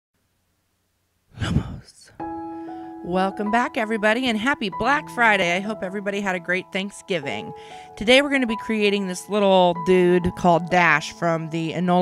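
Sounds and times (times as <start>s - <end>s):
person sighing: 1.3s - 2.9s.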